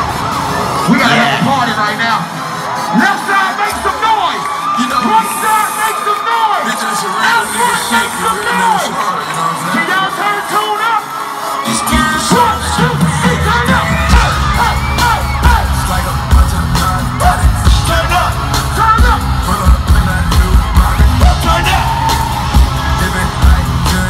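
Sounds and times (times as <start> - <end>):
crowd yelling: 0.0 - 24.0
live hip-hop music: 0.0 - 24.0
vocals: 0.0 - 24.0
heavy bass beat: 11.7 - 24.0.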